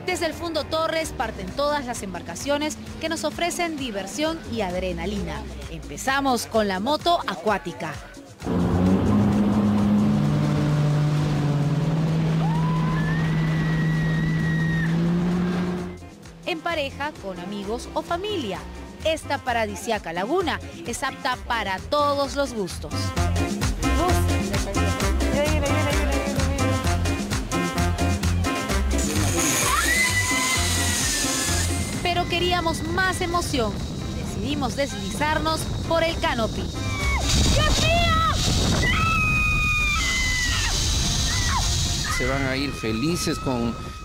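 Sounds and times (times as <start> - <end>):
upbeat music with bass beat: 0.0 - 10.3, 15.7 - 38.0
jet ski engine droning: 8.4 - 16.0
high drawn-out squeal: 12.4 - 16.0, 29.1 - 44.0
water spray hiss: 29.0 - 32.0, 37.2 - 38.9, 40.0 - 42.2.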